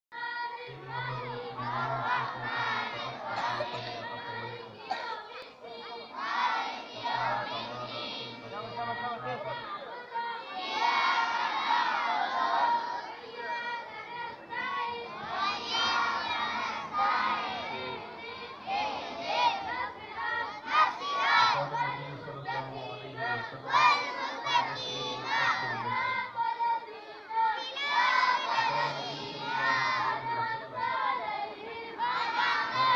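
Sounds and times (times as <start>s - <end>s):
boys chanting in unison: 0.1s - 32.9s
children shouting and chattering: 0.2s - 32.9s.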